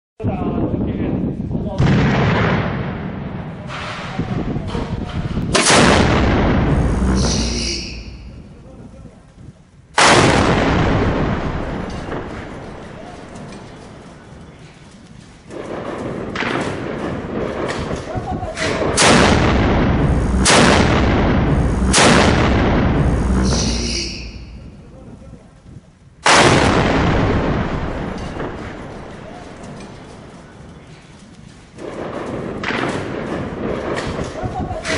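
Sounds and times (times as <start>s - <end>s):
howitzer blast echoing: 18.6s - 24.9s, 26.2s - 30.5s.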